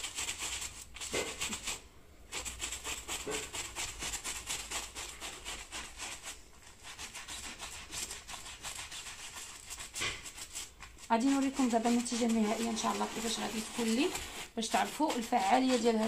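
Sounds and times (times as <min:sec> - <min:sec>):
brush scrubbing upholstery: 0:00.0 - 0:16.0.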